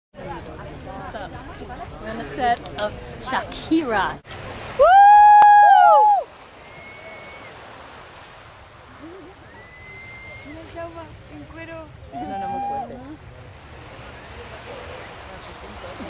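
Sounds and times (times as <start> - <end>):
sea water washing: 4.2 - 16.0
faint voices: 8.9 - 16.0.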